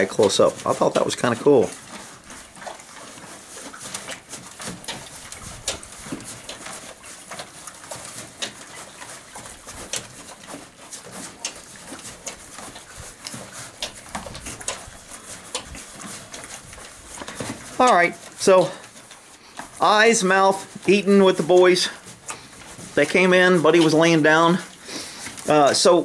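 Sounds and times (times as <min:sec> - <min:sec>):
horses chewing grain: 0:00.0 - 0:26.0.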